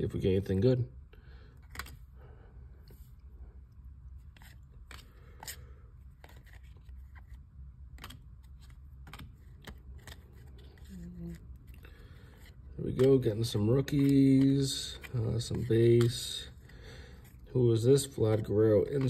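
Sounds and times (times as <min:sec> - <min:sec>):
cards sliding: 0:01.5 - 0:02.1, 0:04.1 - 0:19.0.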